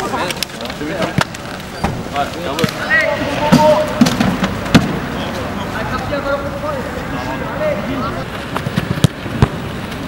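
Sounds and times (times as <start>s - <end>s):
voices talking: 0.0s - 8.3s.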